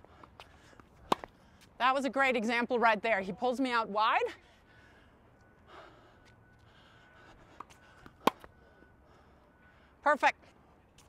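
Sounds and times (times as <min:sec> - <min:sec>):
tennis ball hit with racket: 0:01.1 - 0:01.3, 0:07.6 - 0:08.5.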